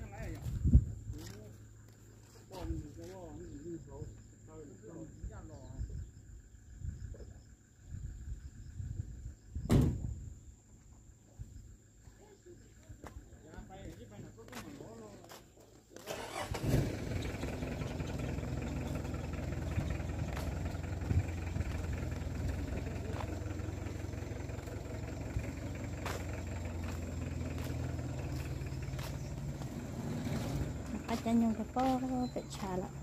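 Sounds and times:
engine starting and running: 16.0s - 33.0s.

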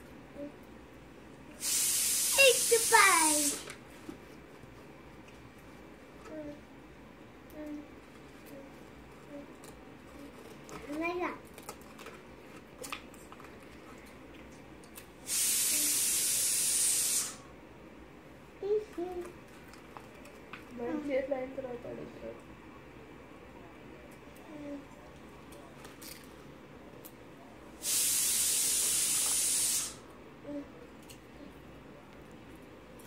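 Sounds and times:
steady hiss: 1.5s - 3.8s, 15.2s - 17.6s, 27.7s - 30.1s.

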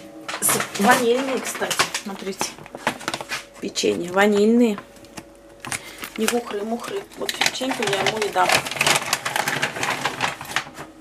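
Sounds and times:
cookie wrapper crinkling: 0.4s - 11.0s.

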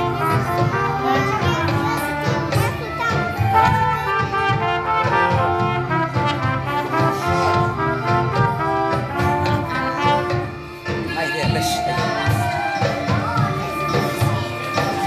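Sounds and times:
recorders and trumpets playing: 0.0s - 15.0s.

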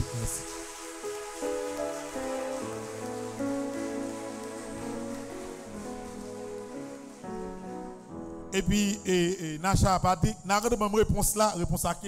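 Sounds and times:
congregation clapping: 0.0s - 7.5s
music of slow held chords: 0.0s - 9.4s.

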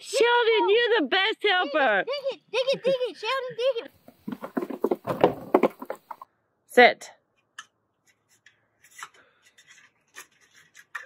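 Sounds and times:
goat hooves on wooden boards: 4.0s - 6.3s.

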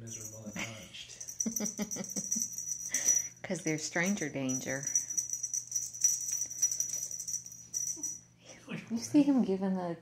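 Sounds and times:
small bell jingling: 0.0s - 8.4s.

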